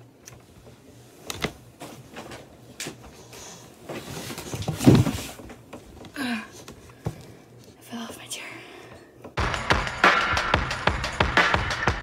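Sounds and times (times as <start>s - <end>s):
person whispering: 7.8s - 9.0s.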